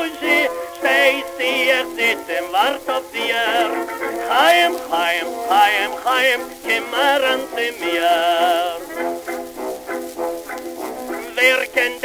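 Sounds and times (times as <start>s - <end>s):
orchestra playing vibrato melody: 0.0s - 2.1s.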